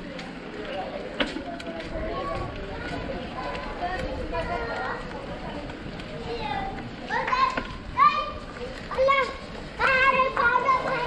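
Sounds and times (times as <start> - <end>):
street noise: 0.0 - 11.0.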